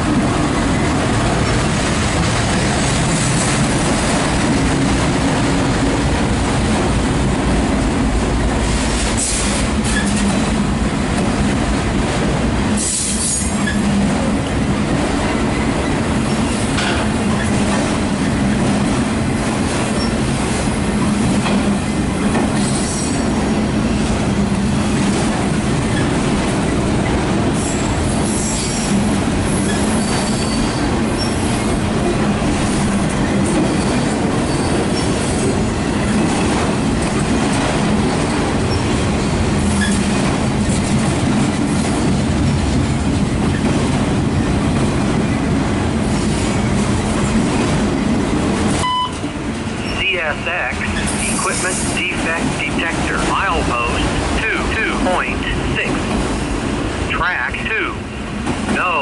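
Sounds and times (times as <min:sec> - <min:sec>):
steel wheels rumbling on rail: 0:00.0 - 0:57.1, 0:57.7 - 0:59.0
high wheel squeals: 0:29.5 - 0:31.5.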